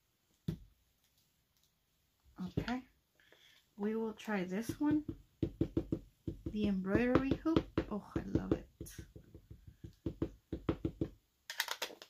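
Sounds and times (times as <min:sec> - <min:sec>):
ink pad tapping stamp: 0:04.7 - 0:11.2
acrylic block clicks: 0:11.5 - 0:12.0.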